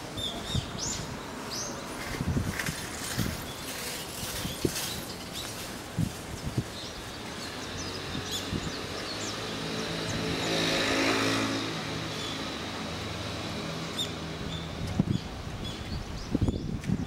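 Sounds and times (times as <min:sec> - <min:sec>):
small birds chirping: 0:00.0 - 0:13.0, 0:13.6 - 0:17.0
car driving past: 0:09.1 - 0:14.4.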